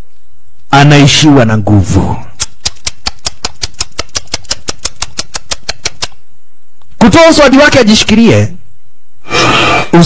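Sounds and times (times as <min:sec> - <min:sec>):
rapid sharp ticking: 0:02.4 - 0:06.2.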